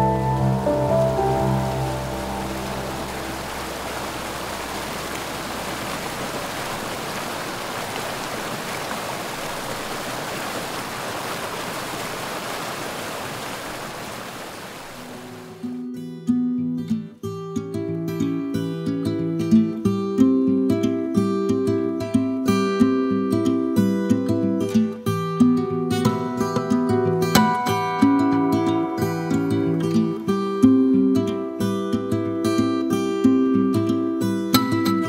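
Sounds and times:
stream rushing over stones: 0.0 - 15.7.

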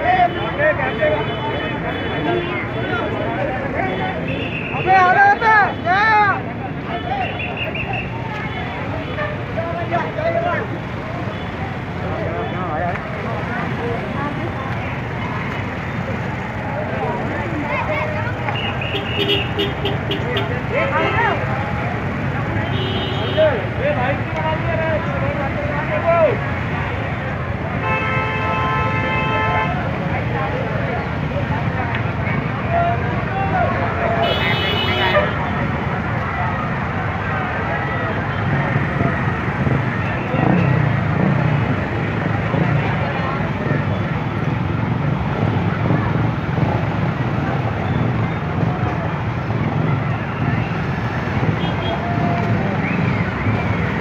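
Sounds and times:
crowd noise: 0.0 - 54.0
motorcycle and vehicle engines: 0.0 - 54.0
traffic noise: 0.0 - 54.0
vehicle horn: 18.6 - 20.5, 22.6 - 23.5, 27.8 - 29.8, 34.2 - 35.4.

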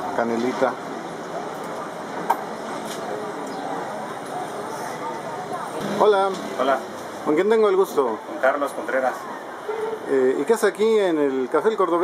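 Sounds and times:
murmur of distant voices: 0.0 - 12.0
traffic: 0.0 - 12.0.

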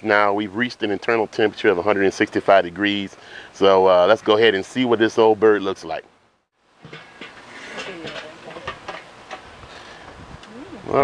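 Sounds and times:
outdoor background noise: 0.0 - 11.0
light knocks and clatters: 6.8 - 9.5
metal grill lid opening: 6.8 - 9.5.

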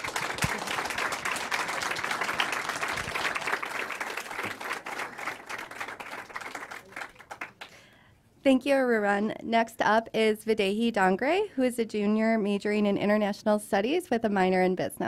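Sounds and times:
audience applauding: 0.0 - 7.8.

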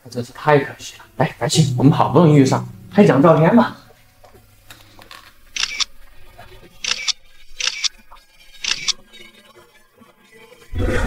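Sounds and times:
camera shutter double click: 5.6 - 5.9, 6.9 - 7.9, 8.7 - 9.0.

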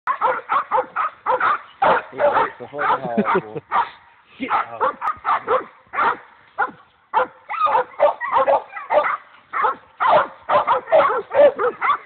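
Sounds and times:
dog barking rapidly: 0.1 - 3.9, 4.5 - 12.0.

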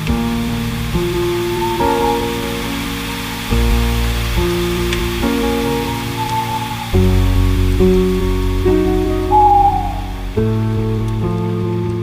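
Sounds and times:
slow piano chords: 0.0 - 12.0
steady hiss: 0.0 - 12.0.

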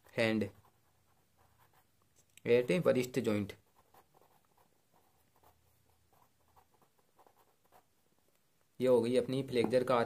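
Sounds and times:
pen scratching on paper: 0.0 - 8.1.

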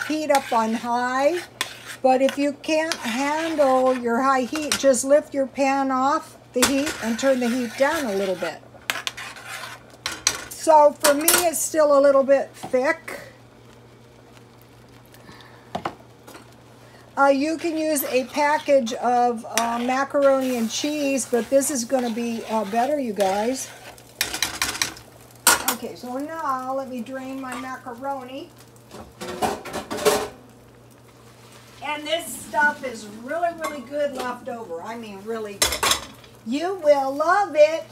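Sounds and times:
steady low hum: 30.2 - 37.9.

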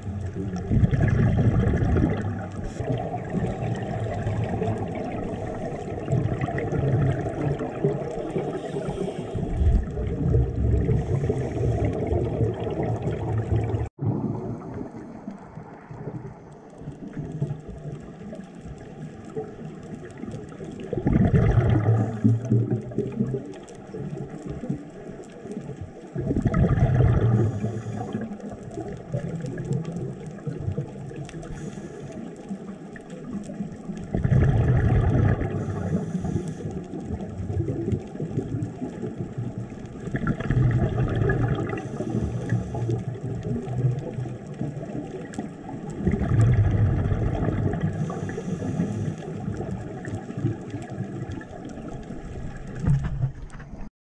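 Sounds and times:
water washing: 0.0 - 16.2, 18.7 - 24.8, 32.8 - 53.6
exhaled bubbles underwater: 0.0 - 53.9.

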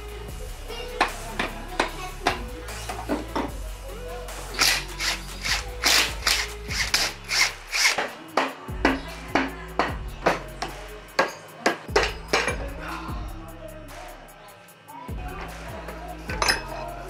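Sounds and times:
background music: 0.0 - 17.0.

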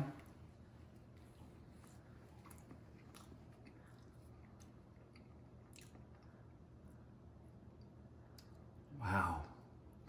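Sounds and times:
faint chewing with soft crunches: 0.0 - 8.9.

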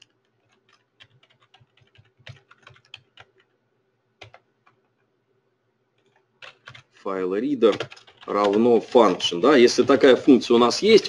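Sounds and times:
typing on computer keyboard: 0.0 - 3.6, 4.2 - 4.9, 6.0 - 6.9, 7.6 - 10.2.

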